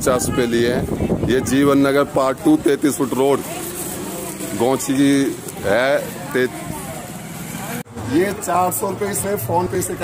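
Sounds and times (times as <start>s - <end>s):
street noise: 0.0s - 10.0s
vehicle engine running: 1.7s - 7.9s
man speaking: 4.5s - 6.6s.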